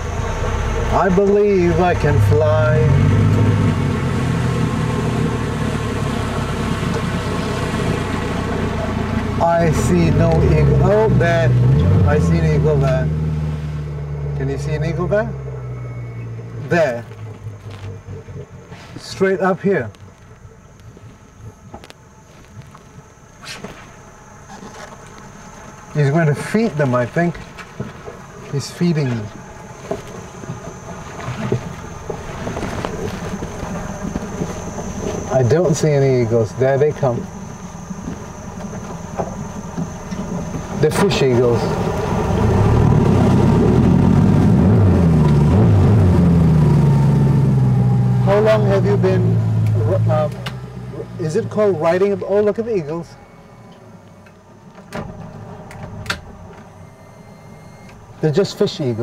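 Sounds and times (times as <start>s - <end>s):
outboard motor running slowly: 0.0s - 55.7s, 56.3s - 59.0s.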